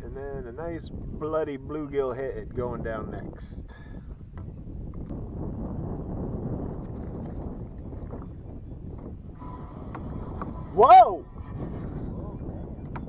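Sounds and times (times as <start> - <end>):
wind and water rumble: 0.0 - 13.0.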